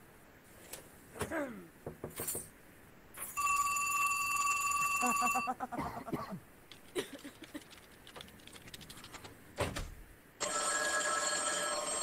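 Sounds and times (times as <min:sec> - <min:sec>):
telephone ringing: 0:03.3 - 0:05.6, 0:10.4 - 0:12.0.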